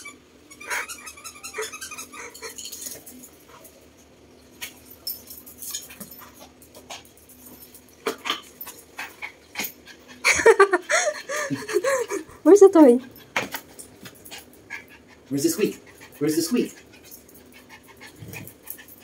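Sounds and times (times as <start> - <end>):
squeaky toy squeals: 0.0 - 2.6.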